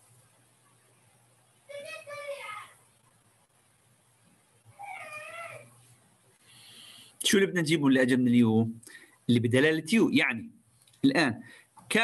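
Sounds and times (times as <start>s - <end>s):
cat meowing: 4.8s - 5.7s.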